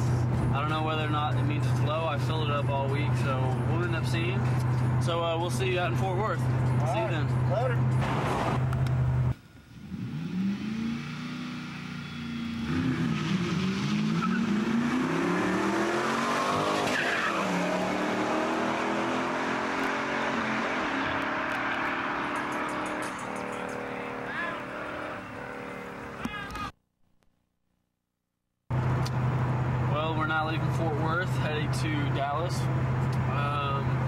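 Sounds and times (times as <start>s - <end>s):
car engines revving: 0.0s - 26.2s
in-car drone: 0.0s - 26.3s, 28.7s - 34.0s
road and tyre noise: 0.0s - 26.8s, 28.7s - 34.0s.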